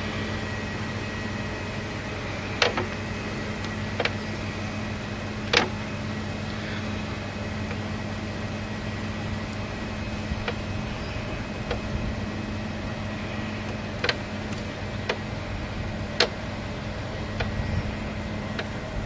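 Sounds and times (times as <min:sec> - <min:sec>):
steady mechanical hum: 0:00.0 - 0:19.0.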